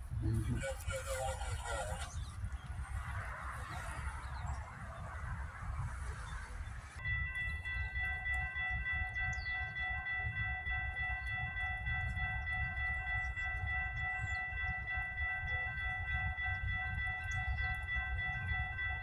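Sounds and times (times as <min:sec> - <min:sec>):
crossing warning bell ringing: 0:07.0 - 0:19.0.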